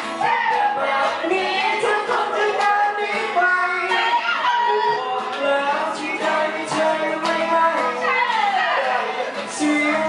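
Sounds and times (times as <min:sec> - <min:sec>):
acoustic guitar: 0:00.0 - 0:10.0
man singing into a microphone: 0:00.6 - 0:10.0.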